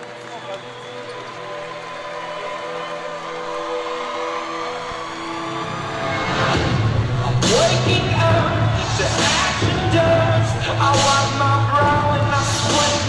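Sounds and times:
arena crowd noise: 0.0s - 13.0s.

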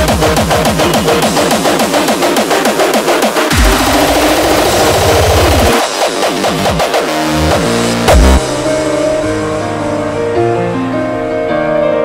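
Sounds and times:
pitch-bending synth notes: 3.5s - 11.2s.

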